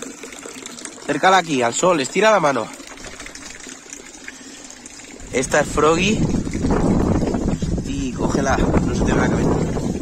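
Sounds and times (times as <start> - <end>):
running water filling a pond: 0.0 - 10.0.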